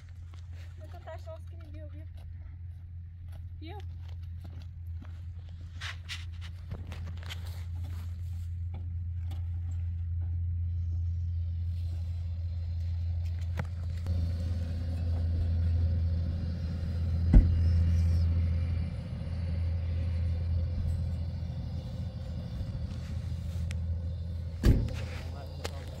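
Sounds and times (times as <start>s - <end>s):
gas burner rumbling: 8.5s - 26.0s.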